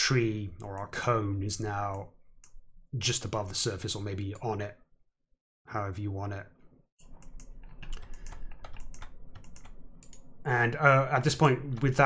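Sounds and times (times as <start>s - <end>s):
keyboard and mouse clicking: 7.1s - 10.3s.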